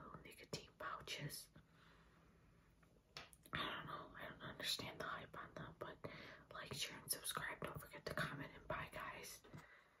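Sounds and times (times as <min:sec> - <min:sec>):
woman whispering: 0:00.0 - 0:01.6, 0:03.5 - 0:09.6.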